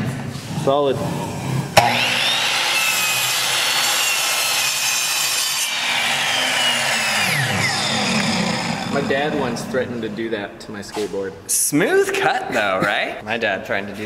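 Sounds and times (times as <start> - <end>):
miter saw cutting wood: 1.8 - 9.8.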